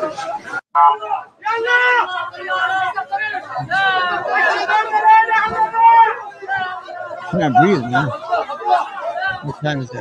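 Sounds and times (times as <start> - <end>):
voices talking: 0.0 - 10.0.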